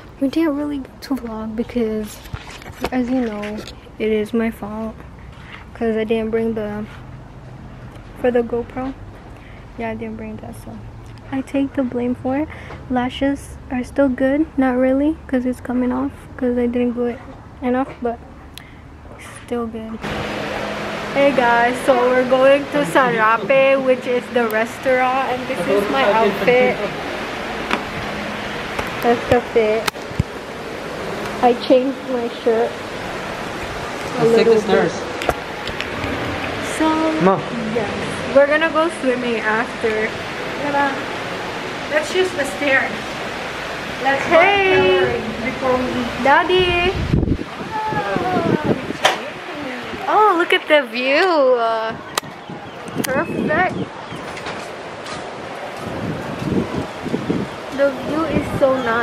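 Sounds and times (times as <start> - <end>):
wind buffeting microphone: 19.7 - 59.0.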